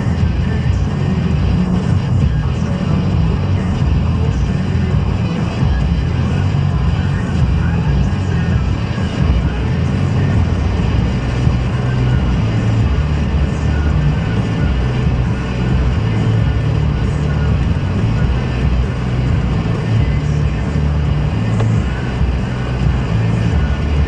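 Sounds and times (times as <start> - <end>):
car driving rumble: 0.0 - 24.0.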